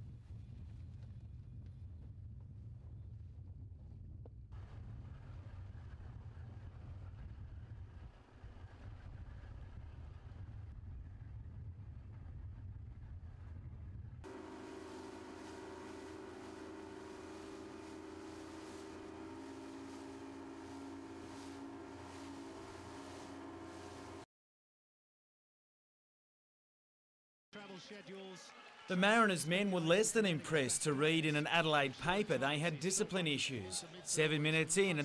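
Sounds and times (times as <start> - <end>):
wind: 0.0 - 24.2
low steady rumble: 0.1 - 24.2
motorboat engine running: 14.3 - 24.2
water hissing: 14.3 - 24.2.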